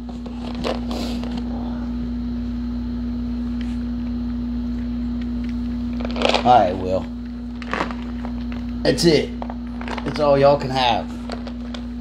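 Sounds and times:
steady electrical hum: 0:00.0 - 0:12.0.

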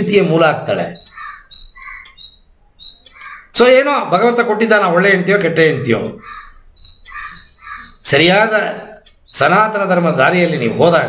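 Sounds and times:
faint bird calls: 0:00.8 - 0:03.7, 0:06.0 - 0:11.0.

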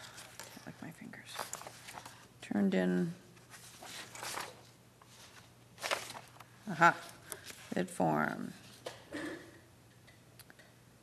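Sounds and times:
paper rustling: 0:00.0 - 0:02.3, 0:03.4 - 0:07.8.

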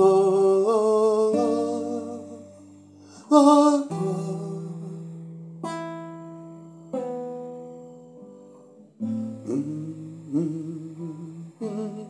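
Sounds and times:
acoustic guitar plucked: 0:00.0 - 0:12.0.

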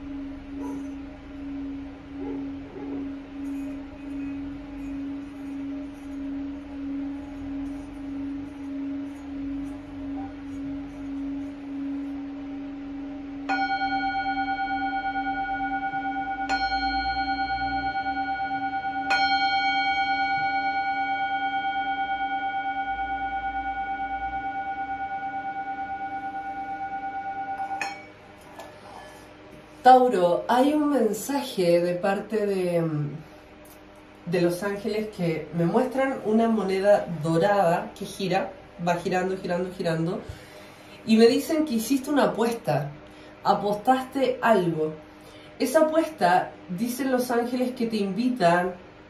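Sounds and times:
singing bowl rubbed on rim: 0:00.0 - 0:28.0
singing bowl struck: 0:00.0 - 0:28.2.

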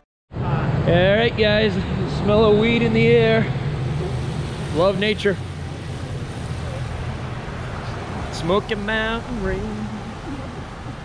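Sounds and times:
street traffic: 0:00.3 - 0:11.0.

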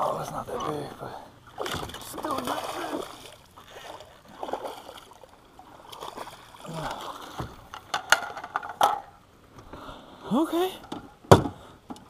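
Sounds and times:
fish thrashing: 0:01.4 - 0:08.5
knocks against boat: 0:01.6 - 0:02.1, 0:10.9 - 0:12.0.

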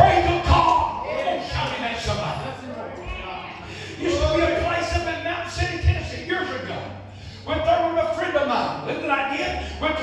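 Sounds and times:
man preaching through pa: 0:00.0 - 0:02.7, 0:03.7 - 0:10.0.

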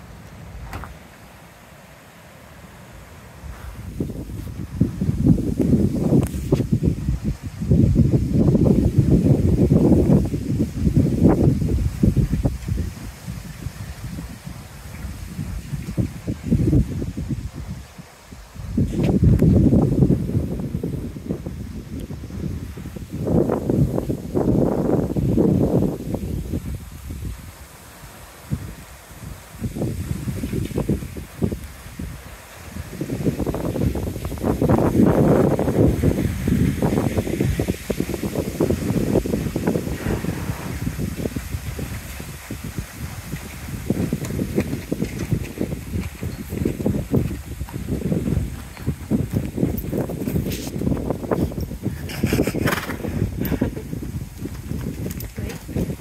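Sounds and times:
wind buffeting microphone: 0:00.0 - 0:01.8, 0:02.4 - 0:56.0
wind rustling through bamboo: 0:00.0 - 0:56.0.

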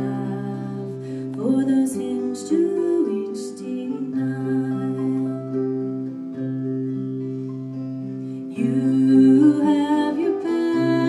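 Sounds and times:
woman singing: 0:00.0 - 0:06.2, 0:08.4 - 0:11.0
acoustic guitar chords: 0:00.0 - 0:11.0.

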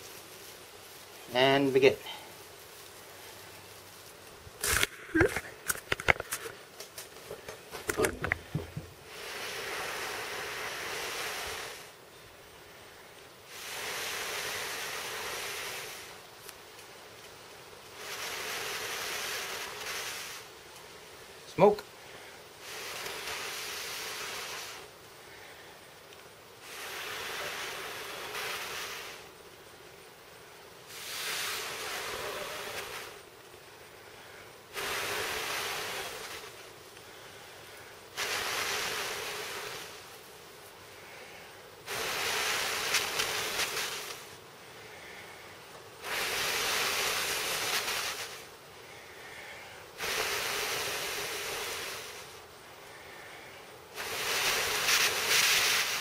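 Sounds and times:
person blowing on ember: 0:07.9 - 0:12.0, 0:12.7 - 0:16.3, 0:17.9 - 0:20.5, 0:22.0 - 0:25.9, 0:26.5 - 0:29.4, 0:30.8 - 0:40.3, 0:40.9 - 0:56.0.

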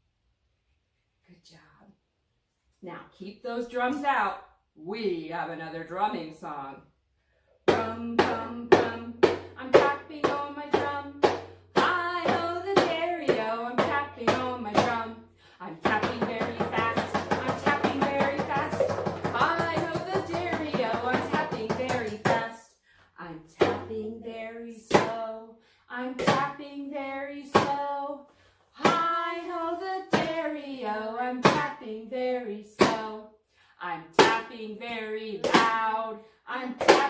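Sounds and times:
person singing children's song: 0:07.6 - 0:37.0.

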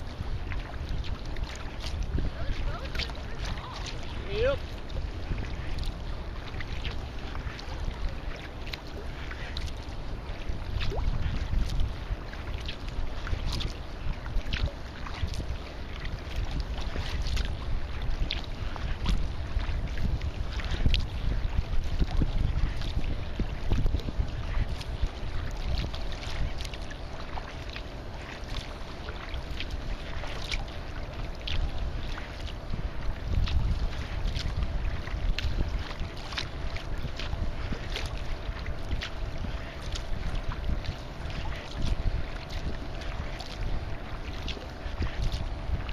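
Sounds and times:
water splashing against kayak: 0:00.0 - 0:45.9
wind buffeting microphone: 0:00.0 - 0:45.9.

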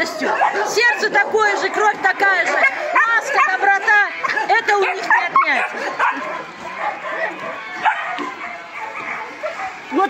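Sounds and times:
puppies yipping and whimpering: 0:00.0 - 0:10.0.

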